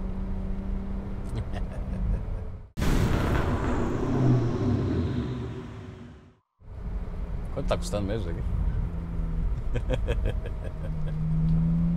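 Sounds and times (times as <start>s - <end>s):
road noise: 0.0s - 11.9s
loud rumbling noise: 2.8s - 6.4s
car engine hum: 6.6s - 11.9s.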